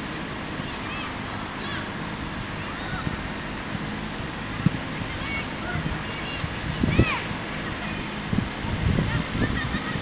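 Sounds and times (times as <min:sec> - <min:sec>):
wind buffeting microphone: 0:01.7 - 0:10.0.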